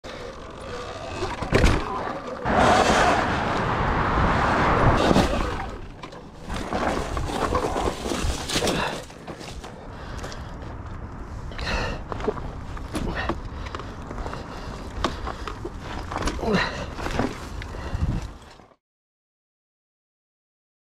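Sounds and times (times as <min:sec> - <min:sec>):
dirt bike tyre rolling noise: 0:00.0 - 0:18.7
rush of noise: 0:02.4 - 0:07.6
bike knocks and rattles: 0:05.2 - 0:18.3.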